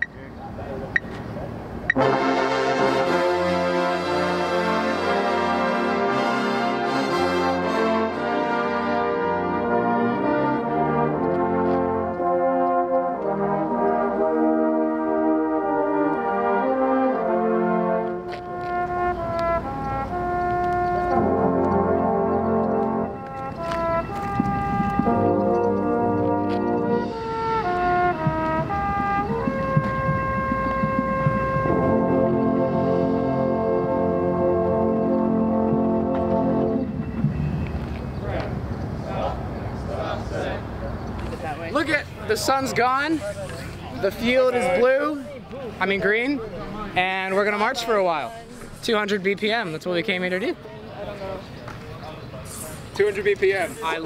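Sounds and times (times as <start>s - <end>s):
brass ensemble playing chords: 0.2s - 50.5s.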